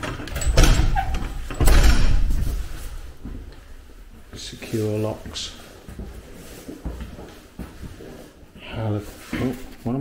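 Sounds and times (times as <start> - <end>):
metal door latch clunking: 0.0 - 2.4.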